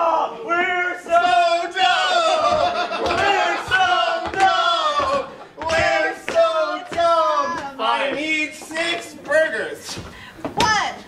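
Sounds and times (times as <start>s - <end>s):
people yelling wordless cries: 0.0s - 8.4s.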